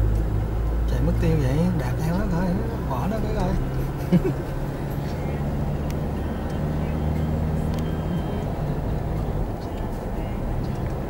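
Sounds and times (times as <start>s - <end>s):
car engine drone and road noise: 0.0s - 11.0s.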